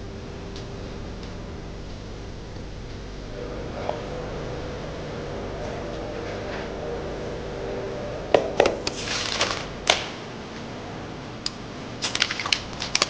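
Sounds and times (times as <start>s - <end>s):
paper rustling: 8.9s - 10.2s, 12.0s - 13.0s.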